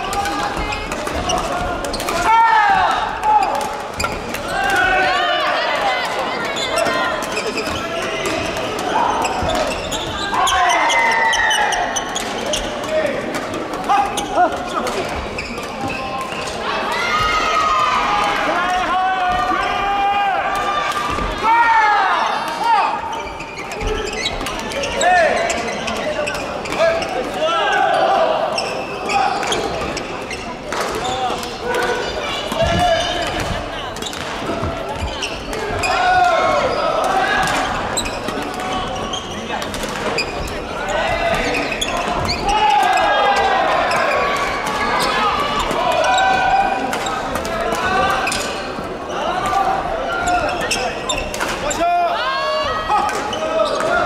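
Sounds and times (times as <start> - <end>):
echoing voices: 0.0 - 54.0.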